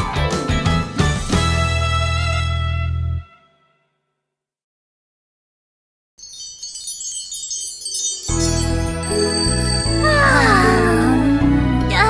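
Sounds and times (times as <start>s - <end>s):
shimmering chime sparkle: 6.2s - 11.4s.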